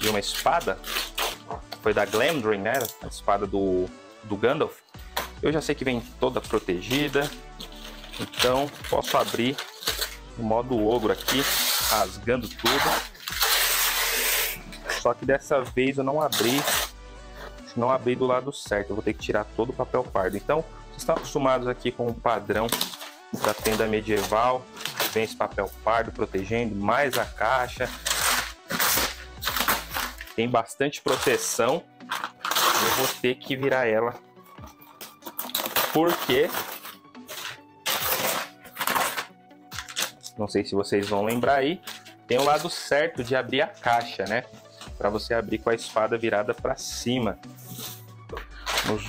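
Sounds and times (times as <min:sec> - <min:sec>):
wrapping paper tearing: 0:00.0 - 0:03.0, 0:06.5 - 0:15.0, 0:16.3 - 0:17.0, 0:22.5 - 0:25.4, 0:27.0 - 0:30.4, 0:31.1 - 0:33.8, 0:34.4 - 0:40.4, 0:41.0 - 0:42.9, 0:47.6 - 0:49.0
cardboard box and paper rustling: 0:35.0 - 0:40.1.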